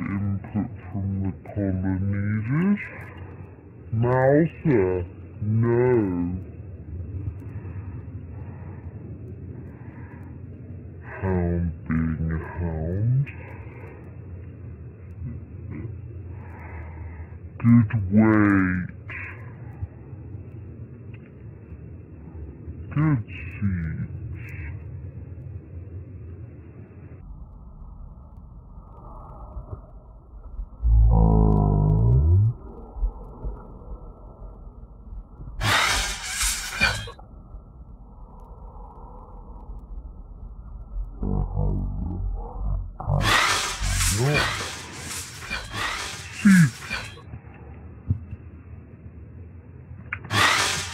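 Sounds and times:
wind rumbling on microphone: 24.2 - 35.7
low droning tone rising: 27.2 - 35.6, 37.0 - 44.3
electric zapping and crackling: 35.6 - 37.2, 42.7 - 47.2, 50.1 - 50.9.

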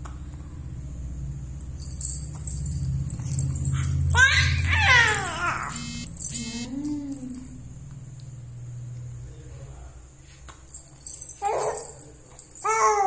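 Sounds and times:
baby cooing: 4.2 - 5.8
baby squealing: 4.2 - 5.8.

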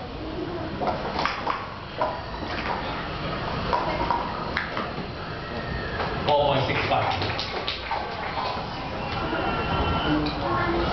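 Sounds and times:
plastic cups clacking on table: 6.0 - 9.3.

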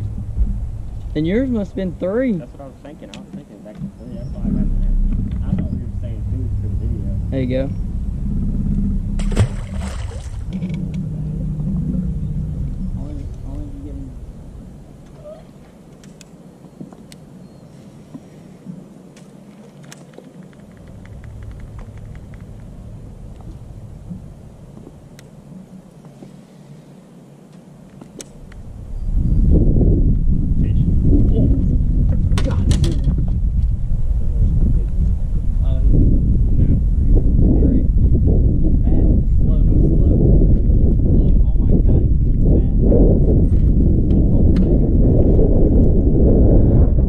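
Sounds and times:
wind buffeting microphone: 0.0 - 26.3, 27.8 - 47.0.

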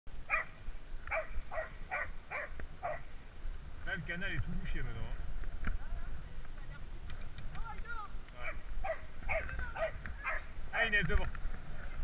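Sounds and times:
dog barking: 0.3 - 3.1, 8.4 - 10.5.

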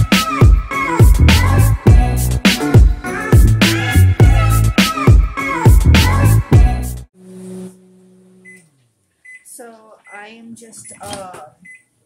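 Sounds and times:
microwave oven humming: 7.2 - 8.9.

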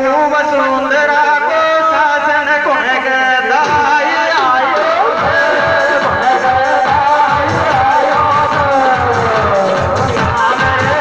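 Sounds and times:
steady drum beat: 3.4 - 11.0
folk melody: 3.5 - 11.0.

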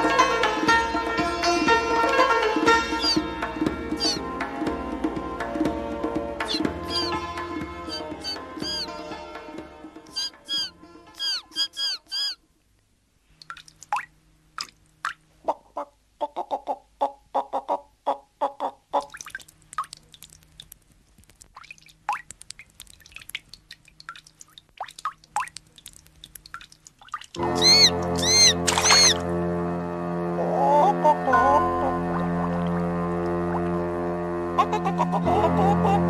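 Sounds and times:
plucked and percussive notes: 0.0 - 11.7, 27.4 - 29.5, 30.9 - 36.0
cartoon music: 2.8 - 3.3, 3.9 - 4.3, 6.4 - 9.0, 10.1 - 12.4, 27.4 - 29.3, 30.2 - 36.0
bird-like squawks: 2.9 - 3.2, 4.0 - 4.2, 6.4 - 7.2, 7.9 - 8.9, 10.1 - 12.4, 27.5 - 29.2
falling whistle glides: 3.0 - 3.2, 4.0 - 4.2, 6.4 - 7.2, 7.9 - 8.9, 10.1 - 12.4, 27.5 - 29.2.

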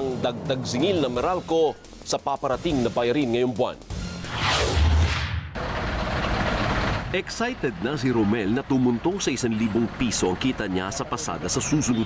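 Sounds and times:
street noise: 0.0 - 2.6, 4.2 - 12.0
whoosh: 4.2 - 5.6
low boom: 4.3 - 5.6
vehicle engine idling: 5.6 - 12.0.

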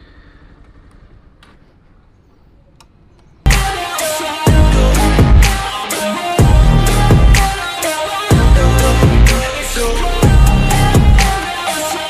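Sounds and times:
loud electronic music: 3.5 - 12.0.

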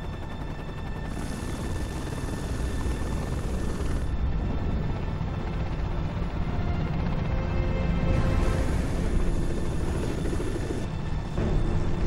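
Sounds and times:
helicopter rotor and engine: 0.0 - 12.0
hissing: 0.9 - 4.2, 8.2 - 11.3.

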